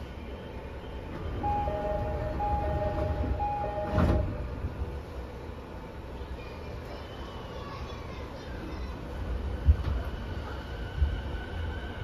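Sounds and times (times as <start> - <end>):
train doors thumping shut: 1.2 - 4.5
two-tone door chime: 1.4 - 4.3.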